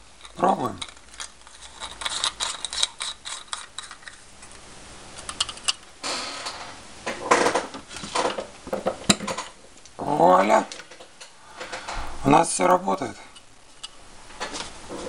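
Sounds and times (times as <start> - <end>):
scraping and rubbing: 0.2 - 4.2.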